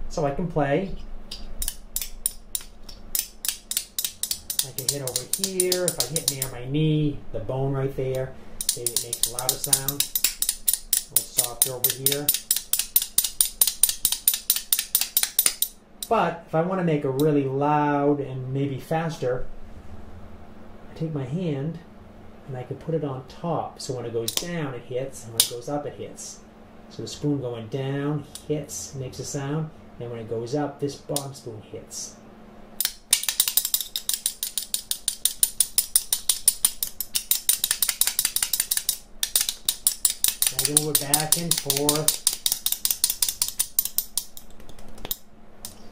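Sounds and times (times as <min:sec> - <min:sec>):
spoons clacking against thigh: 0:01.3 - 0:06.6, 0:08.6 - 0:15.7, 0:32.8 - 0:45.9.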